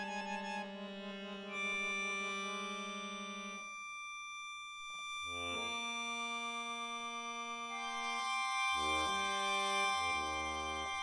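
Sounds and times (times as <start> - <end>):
low pulsing accordion note: 0.0 - 3.9, 4.8 - 11.0
accordion high chord: 0.0 - 4.0, 5.0 - 11.0.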